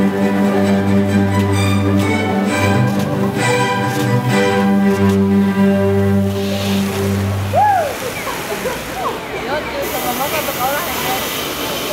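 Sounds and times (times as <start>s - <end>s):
fountain water spray hissing: 6.2s - 11.9s
voices chattering: 6.4s - 11.9s.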